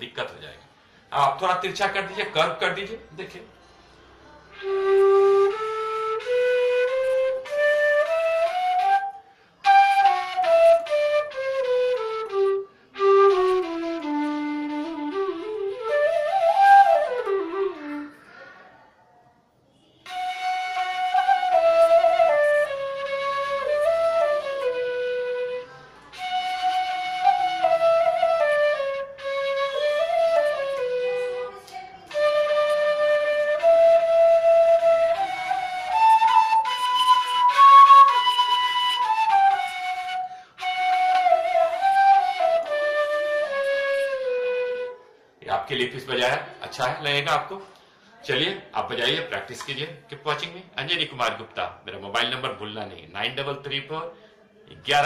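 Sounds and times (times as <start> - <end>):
bamboo flute melody: 4.2 - 18.3, 19.9 - 45.4.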